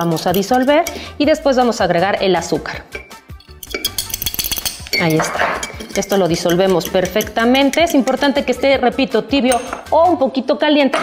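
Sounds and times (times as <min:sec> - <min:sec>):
fork clinking against glass mug: 0:00.0 - 0:01.1, 0:03.0 - 0:08.6.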